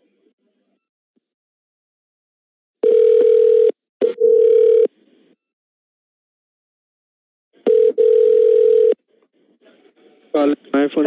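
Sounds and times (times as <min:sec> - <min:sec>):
telephone ringing tone: 0:02.8 - 0:04.9, 0:07.7 - 0:09.0.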